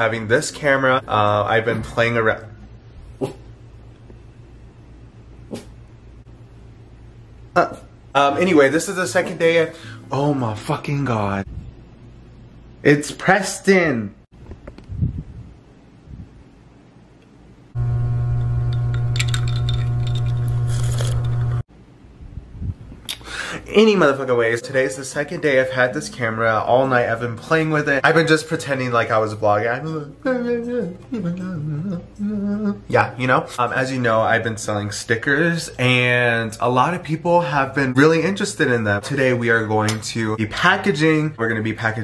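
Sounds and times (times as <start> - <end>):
steady low hum: 0.0 - 13.3, 14.4 - 41.8.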